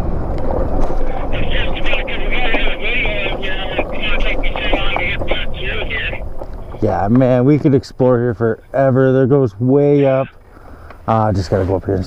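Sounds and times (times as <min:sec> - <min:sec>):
wind buffeting microphone: 0:00.0 - 0:07.6
low rumble: 0:00.0 - 0:09.2
high warbling chatter: 0:01.0 - 0:06.2, 0:09.8 - 0:10.4.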